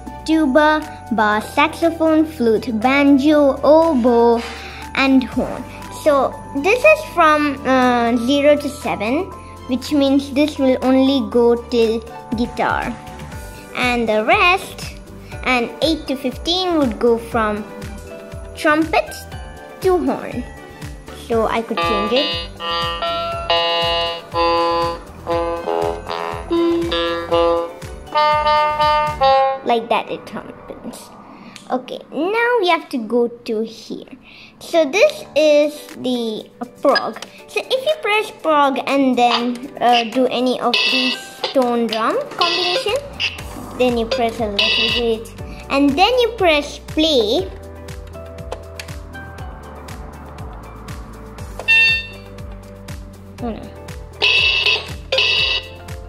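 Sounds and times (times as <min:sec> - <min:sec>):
electronic keyboard notes: 0:20.2 - 0:29.9, 0:39.3 - 0:46.4, 0:47.4 - 0:56.0
steady low beat: 0:21.9 - 0:29.2, 0:47.6 - 0:54.2.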